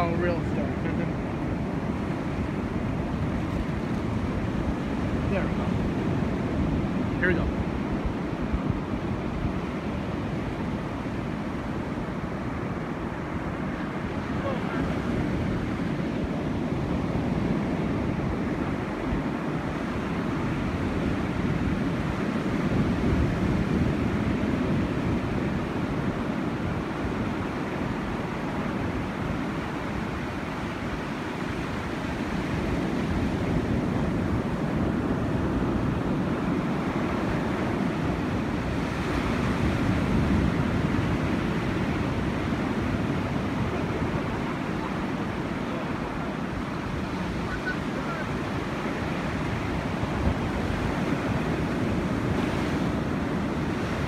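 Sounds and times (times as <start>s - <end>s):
ocean surf breaking on beach: 0.0s - 54.0s.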